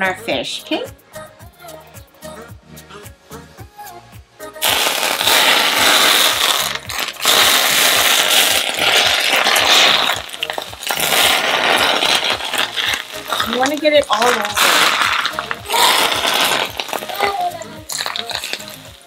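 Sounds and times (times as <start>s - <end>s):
hot oil sizzling and spattering: 4.6s - 19.0s.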